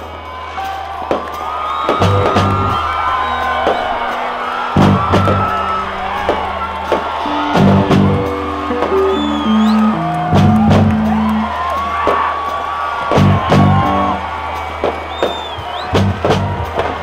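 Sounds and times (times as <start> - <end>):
drum hits: 1.1 - 12.3, 13.0 - 14.2, 14.8 - 17.0
electric guitars: 1.9 - 12.5, 13.1 - 14.4
bass notes: 2.0 - 11.8, 13.1 - 14.5, 15.6 - 17.0.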